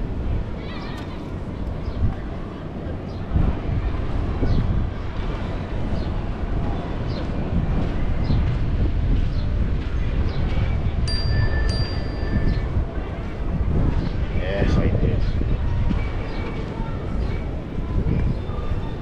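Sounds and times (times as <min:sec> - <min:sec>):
wind buffeting microphone: 0:00.0 - 0:19.0
footsteps in sand: 0:04.4 - 0:11.0
thin high tone: 0:11.1 - 0:12.7.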